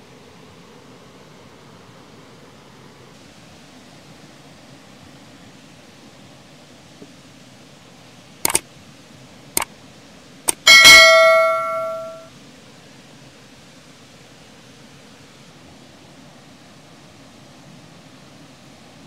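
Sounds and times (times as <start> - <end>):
notification bell ding: 10.6 - 12.3.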